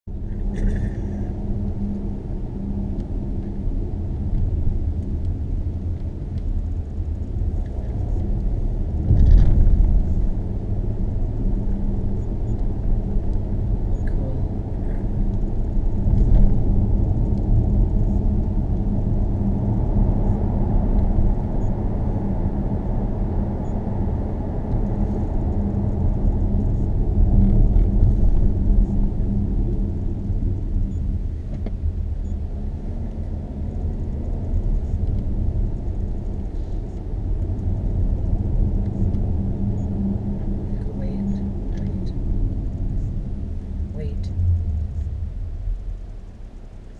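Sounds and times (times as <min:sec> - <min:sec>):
constant low hum: 0:00.0 - 0:46.9
tyre and engine rumble: 0:00.1 - 0:46.9.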